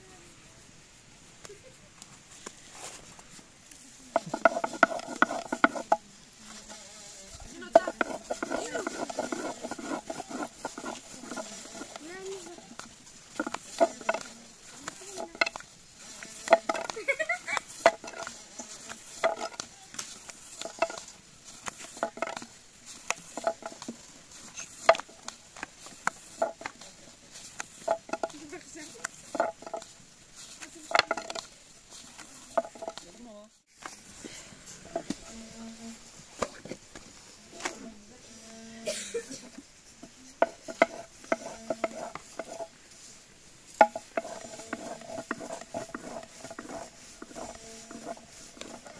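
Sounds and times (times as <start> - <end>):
person speaking: 3.8 - 20.0, 27.9 - 29.5, 40.0 - 42.7
rolling pin clacking on board: 4.2 - 6.0, 7.7 - 14.3, 16.4 - 17.0, 40.4 - 42.7.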